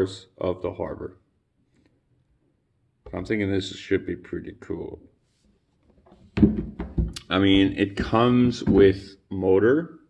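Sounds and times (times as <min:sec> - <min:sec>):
sudden thunk: 0:06.4 - 0:07.2.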